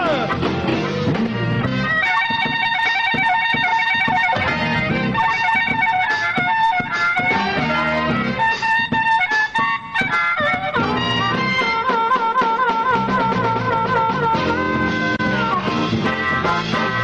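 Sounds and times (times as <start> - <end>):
blues band playing: 0.0 - 17.0
harmonica soloing: 0.0 - 17.0.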